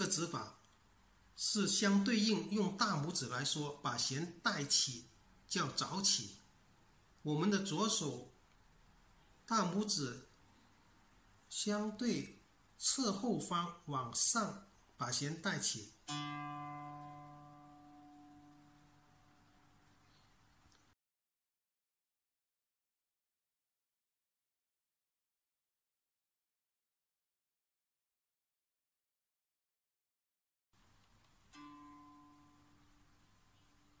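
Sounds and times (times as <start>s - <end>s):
plucked zither string note: 16.1s - 19.8s, 31.5s - 33.1s.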